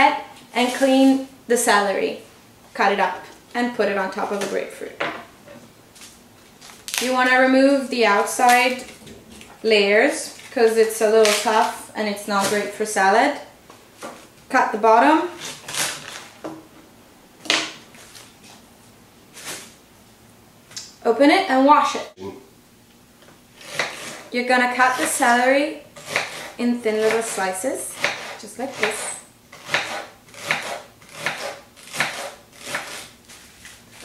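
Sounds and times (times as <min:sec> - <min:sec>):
knife slicing celery on board: 0:23.6 - 0:24.3, 0:26.0 - 0:34.0.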